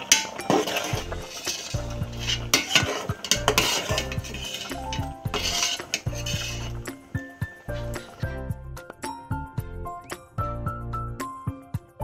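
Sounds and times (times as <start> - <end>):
spatula scraping metal pot: 0.0 - 8.3
background music with bass: 0.0 - 12.0.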